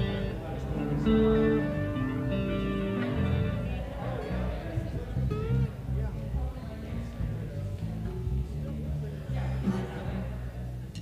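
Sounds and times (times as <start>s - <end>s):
guitar playing: 0.0s - 10.9s
people talking in background: 0.0s - 11.0s.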